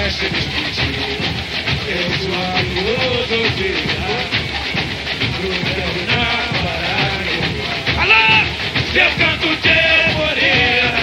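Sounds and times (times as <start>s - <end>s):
deep drums: 0.0s - 11.0s
massed voices singing: 0.0s - 11.0s
small percussion rattle: 0.0s - 11.0s.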